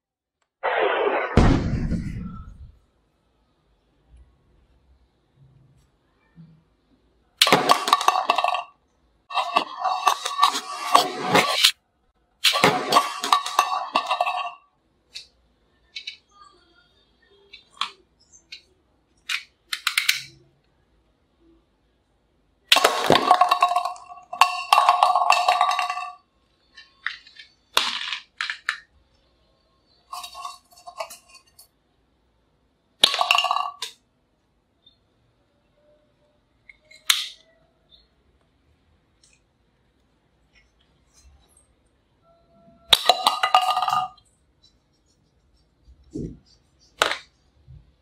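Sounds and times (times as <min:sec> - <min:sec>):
plastic cup clattering: 0:07.4 - 0:11.7, 0:12.5 - 0:14.6, 0:22.7 - 0:26.2, 0:26.8 - 0:28.9, 0:30.1 - 0:31.6, 0:33.0 - 0:34.0, 0:42.9 - 0:44.2.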